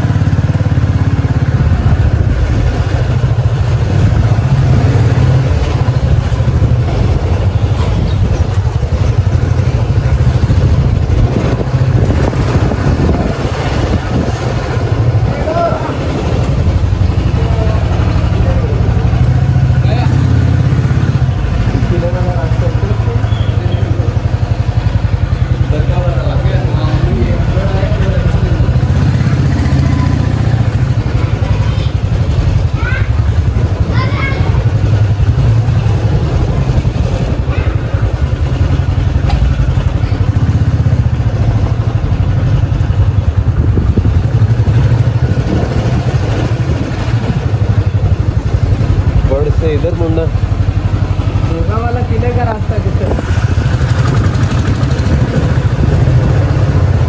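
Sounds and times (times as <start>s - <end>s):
motorcycle engine running: 0.0s - 57.0s
voices: 0.0s - 57.0s.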